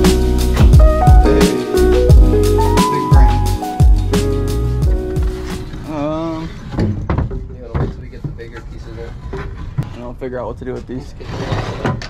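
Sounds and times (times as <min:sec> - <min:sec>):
background music: 0:00.0 - 0:06.7.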